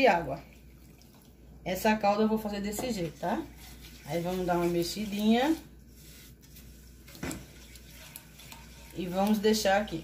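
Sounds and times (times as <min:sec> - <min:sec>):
spatula stirring in saucepan: 0:02.5 - 0:10.0.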